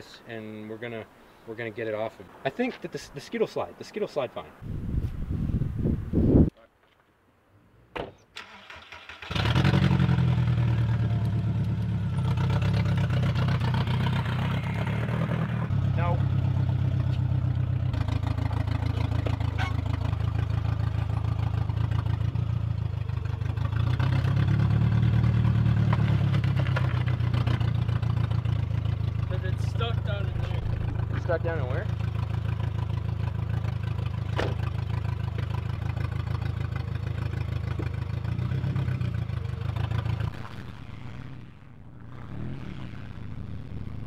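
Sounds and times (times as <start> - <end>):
car engine starting and idling: 8.4 - 41.2.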